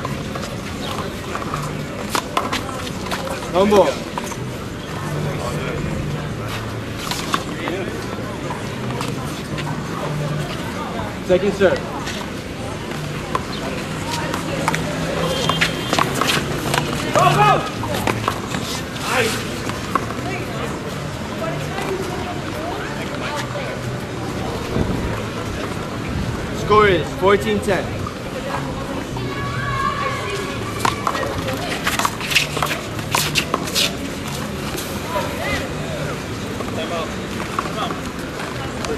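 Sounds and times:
crowd chatter: 0.0 - 38.9.

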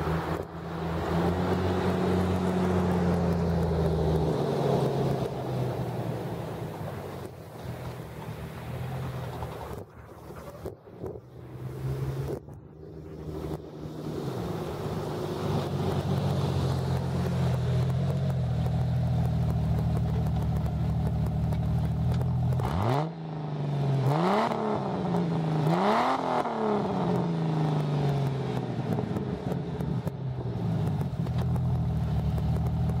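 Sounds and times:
car engine idling and revving: 0.0 - 33.0.

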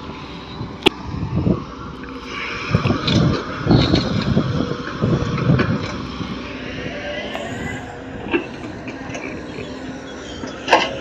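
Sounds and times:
excavator diesel engine: 0.0 - 11.0.

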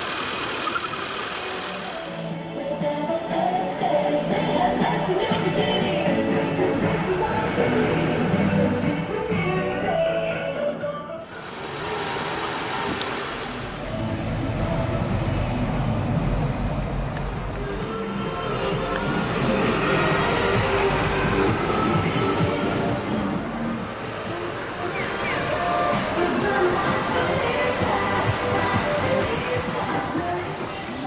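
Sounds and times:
street traffic noise: 0.0 - 31.0
music from loudspeakers: 1.9 - 11.3, 17.5 - 31.0
low rumble of passing vehicles: 11.3 - 31.0.

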